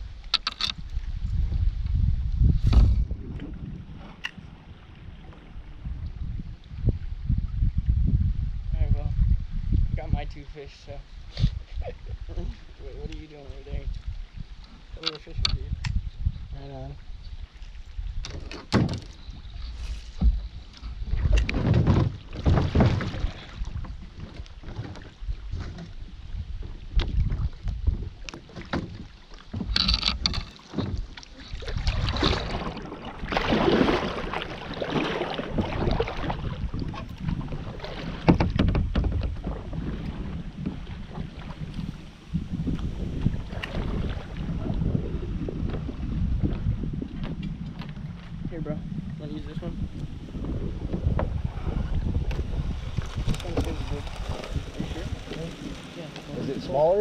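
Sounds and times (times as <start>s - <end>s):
water splashing against kayak hull: 0.0s - 8.0s, 10.8s - 57.0s
wind rumbling on microphone: 0.0s - 57.0s.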